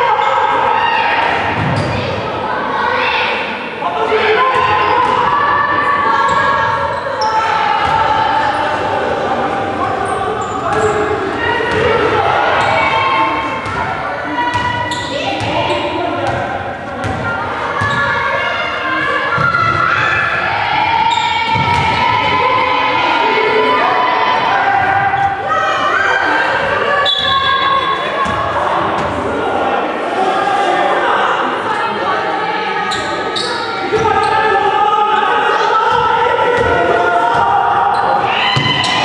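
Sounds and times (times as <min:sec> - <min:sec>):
voices calling out: 0:00.0 - 0:39.0
basketball bouncing on court: 0:14.5 - 0:14.8, 0:21.5 - 0:22.0, 0:38.6 - 0:38.9.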